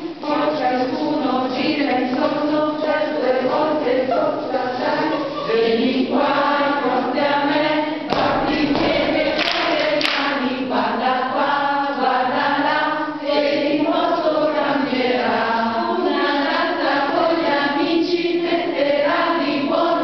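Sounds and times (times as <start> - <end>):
group of voices singing: 0.0 - 20.0.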